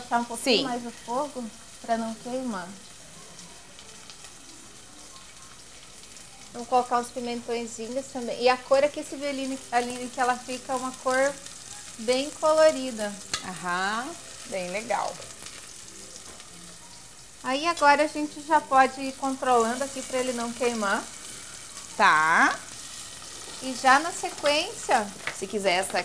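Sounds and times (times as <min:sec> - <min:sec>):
onion sizzling in oil: 0:00.0 - 0:26.0
utensil stirring in pot: 0:18.8 - 0:26.0.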